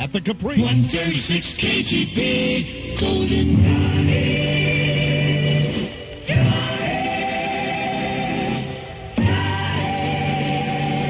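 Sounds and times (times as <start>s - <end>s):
vocal group singing jingle: 0.5s - 11.0s.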